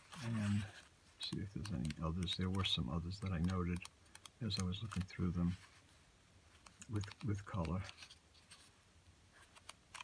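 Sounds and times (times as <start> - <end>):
magazine pages rustling: 0.0 - 6.0, 6.6 - 8.8.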